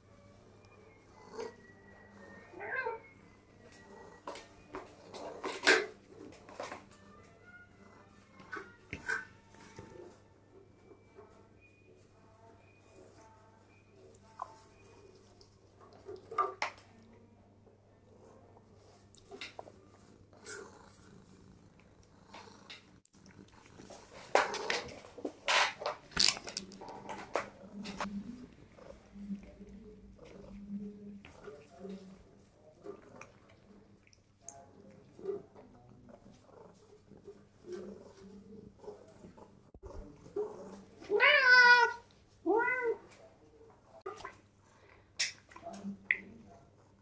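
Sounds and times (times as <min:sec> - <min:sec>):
cat meowing: 0:02.5 - 0:03.1, 0:41.1 - 0:43.0.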